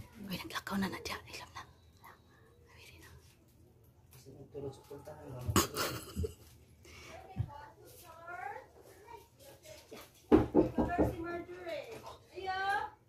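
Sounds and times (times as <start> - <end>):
people whispering: 0.1 - 3.4.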